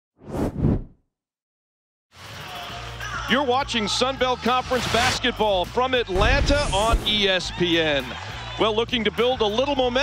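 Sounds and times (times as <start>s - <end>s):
whoosh: 0.2s - 1.0s.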